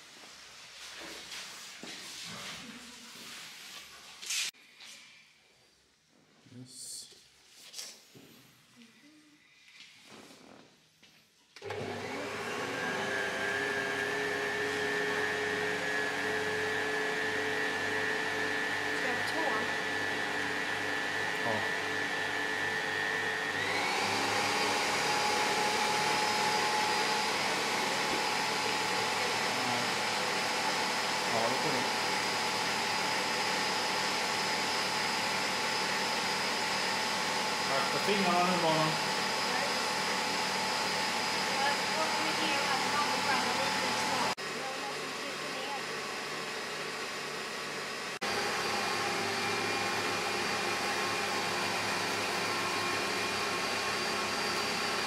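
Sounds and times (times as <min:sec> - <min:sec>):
electric motor humming: 0:11.6 - 0:55.0.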